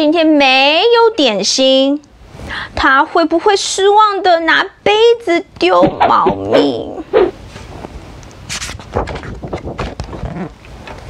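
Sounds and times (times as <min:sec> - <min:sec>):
person vocal sound: 0:05.8 - 0:07.4
paper page rustling: 0:08.5 - 0:10.5.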